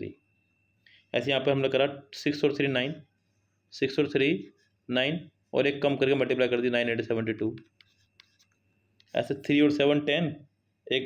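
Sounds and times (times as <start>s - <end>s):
writing taps on touchscreen: 7.5s - 9.2s.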